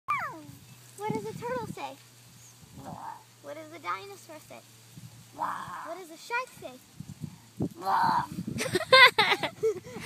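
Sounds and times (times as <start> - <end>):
child squealing: 0.1 - 0.5.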